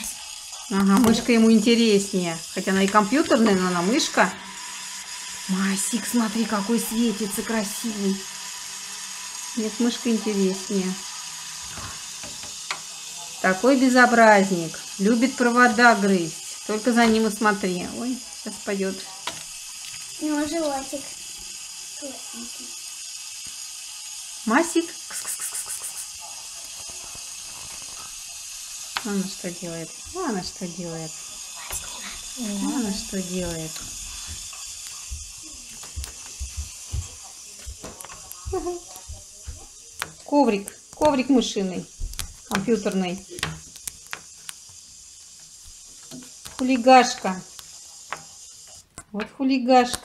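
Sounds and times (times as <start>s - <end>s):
room noise hiss: 0.0s - 50.0s.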